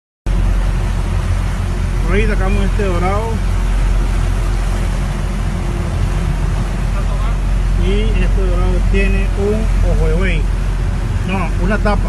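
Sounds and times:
boat engine running: 0.3 - 12.0.

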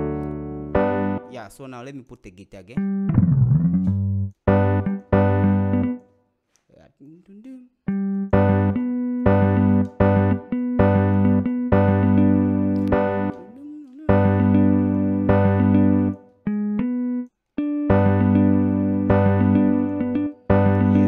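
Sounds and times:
synthesized chords: 0.0 - 1.3, 2.8 - 6.1, 7.9 - 21.0.

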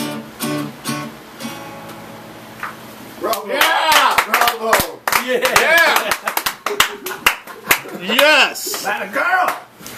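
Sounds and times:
small audience clapping: 2.6 - 9.7
voices shouting and cheering: 3.2 - 9.7.

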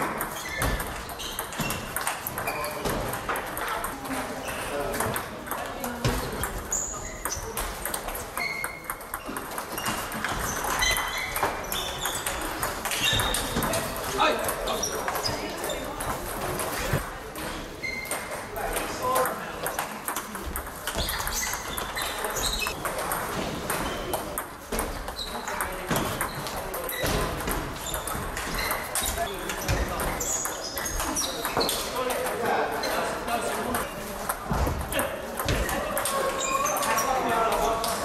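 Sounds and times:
players' voices: 0.0 - 38.0
table tennis balls clicking: 0.0 - 38.0.

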